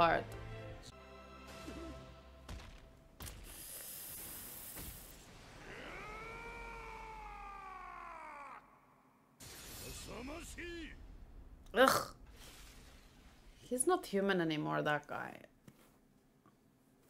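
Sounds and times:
bright hissing effect: 3.3 - 5.6
long rising and falling cry: 5.6 - 9.3.

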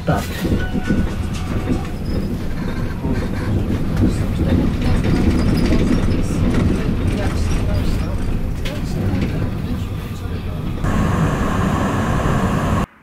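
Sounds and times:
tram wheels rumbling on rails: 0.0 - 13.0.

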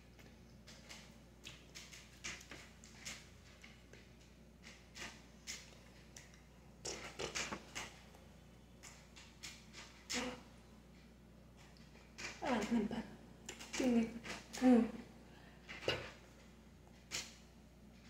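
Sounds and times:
low steady hum: 0.0 - 18.0.

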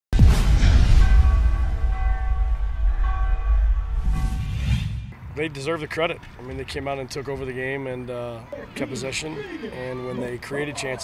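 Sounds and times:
deep bass rumble: 0.2 - 5.5.

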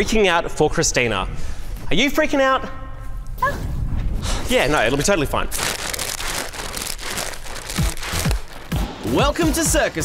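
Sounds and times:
paper bag crinkling: 5.5 - 8.8.

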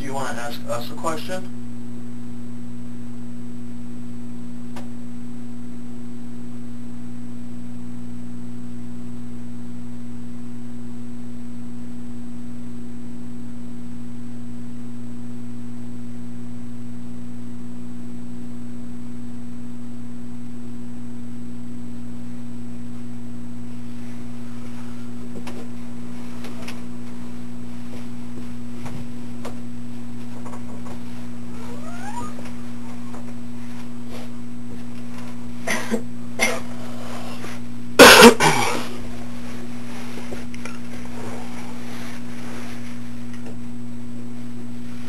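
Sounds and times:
electrical hum: 0.0 - 45.0
faint high whine: 18.8 - 45.0.

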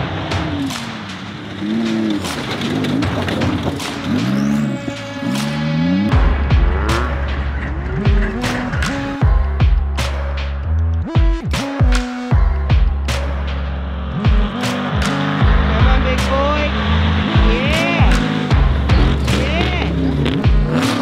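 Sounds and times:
music with deep bass line: 0.0 - 21.0
truck engines revving: 0.0 - 21.0.

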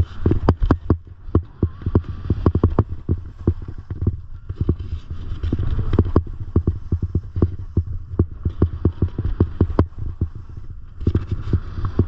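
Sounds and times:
skis clattering over snow: 0.0 - 12.0
wind on microphone: 0.0 - 12.0.

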